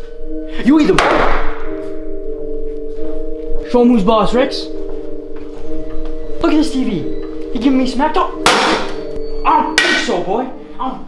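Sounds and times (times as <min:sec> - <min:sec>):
background music of held tones: 0:00.0 - 0:11.0.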